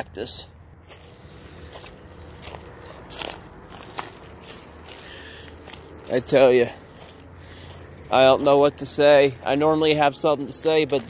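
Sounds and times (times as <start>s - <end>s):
footsteps crunching on dry leaves: 0.6s - 9.5s.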